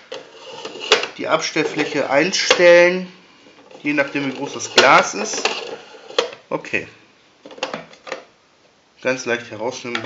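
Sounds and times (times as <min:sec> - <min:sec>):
plastic clicks and knocks: 0:07.4 - 0:08.3.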